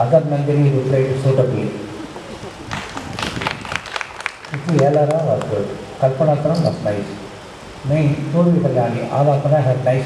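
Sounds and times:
man speaking at a microphone: 0.0 - 1.9, 4.5 - 7.2, 7.8 - 10.0.

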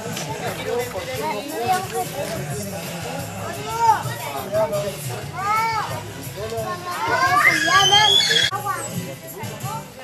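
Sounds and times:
children shouting and squealing: 5.3 - 9.0.

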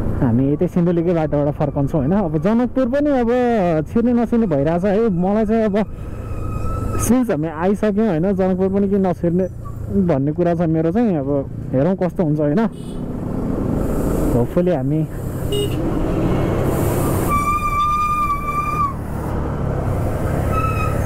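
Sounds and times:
motorcycle engine and road noise: 0.0 - 21.0
vehicle horn: 12.7 - 13.1, 15.5 - 16.4.

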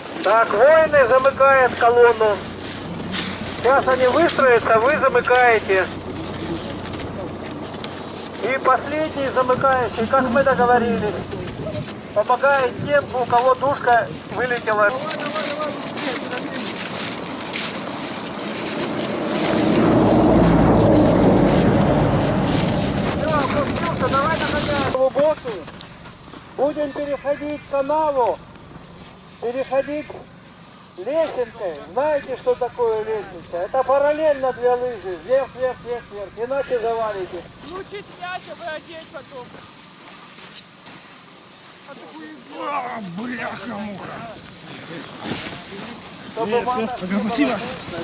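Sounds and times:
skis scraping on snow: 0.0 - 48.0
low rumble: 18.2 - 25.0.

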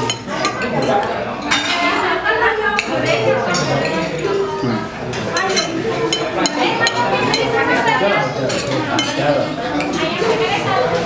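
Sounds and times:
cutlery clinking on a plate: 0.0 - 2.0, 2.8 - 4.4, 5.1 - 10.1.

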